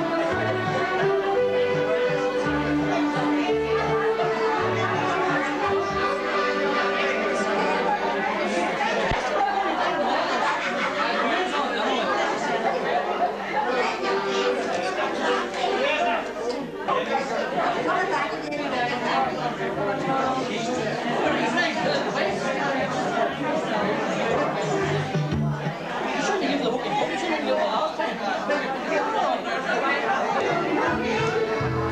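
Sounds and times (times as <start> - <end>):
crowd chatter: 0.0 - 31.9.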